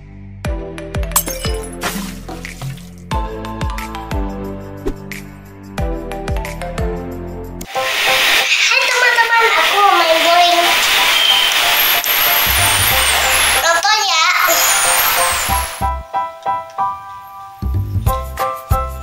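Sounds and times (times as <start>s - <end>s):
music: 0.0s - 19.0s
hissing crowd-like noise: 7.7s - 13.8s
children shouting and cheering: 8.4s - 10.9s, 13.6s - 15.0s.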